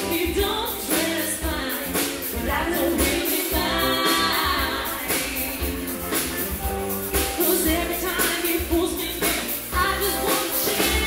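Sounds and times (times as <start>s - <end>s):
woman singing: 0.0s - 6.1s, 7.4s - 11.0s
soul band playing: 0.0s - 11.0s.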